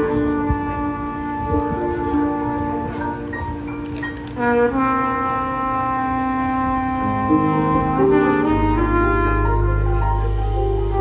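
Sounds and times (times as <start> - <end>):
trumpet holding long note: 0.0 - 3.4, 4.3 - 11.0
faint jazz band backing: 0.0 - 11.0.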